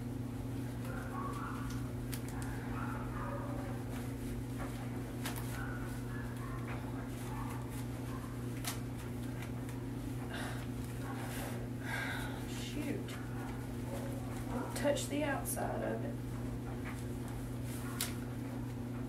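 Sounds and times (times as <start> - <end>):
low electrical hum: 0.0 - 19.0
glove crinkling and clicks: 0.8 - 2.6, 3.9 - 9.8, 16.8 - 18.8.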